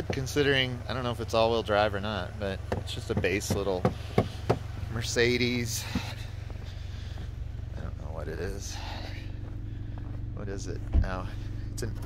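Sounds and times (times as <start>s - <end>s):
steady low rumble: 0.0s - 12.0s
footsteps crunching in snow: 6.1s - 8.1s, 9.0s - 11.2s.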